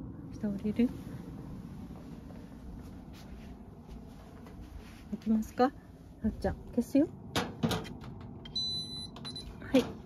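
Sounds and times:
electronic appliance beep: 0:08.4 - 0:09.7.

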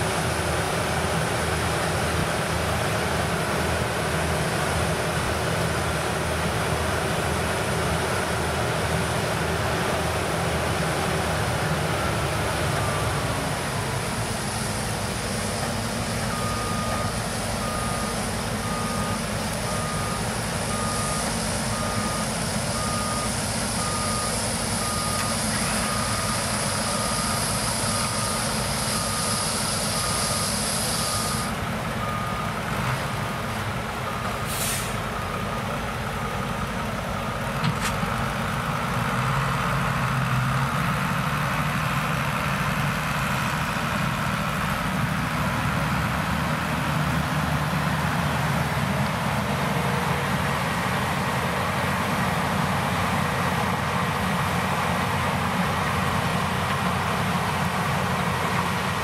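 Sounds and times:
combine harvester running: 0:00.0 - 0:59.0
reversing beeper: 0:07.8 - 0:33.2
short hiss: 0:34.5 - 0:35.0.

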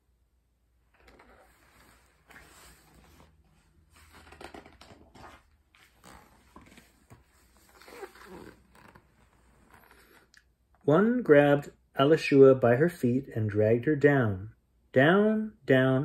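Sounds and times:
book handling and page turning: 0:00.9 - 0:10.2.

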